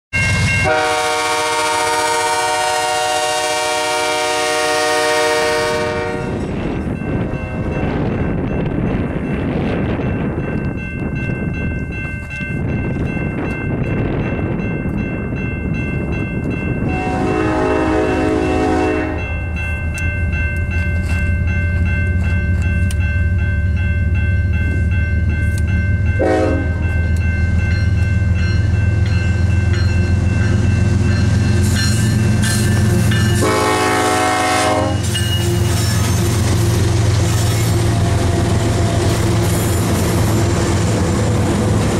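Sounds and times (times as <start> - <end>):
locomotive horn chord: 0.6 - 6.4, 16.8 - 19.6, 26.2 - 26.9, 32.9 - 35.1.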